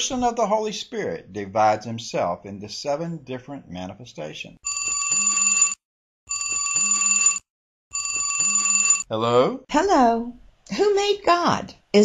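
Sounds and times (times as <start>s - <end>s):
bell-like phone ringtone: 4.7s - 9.1s.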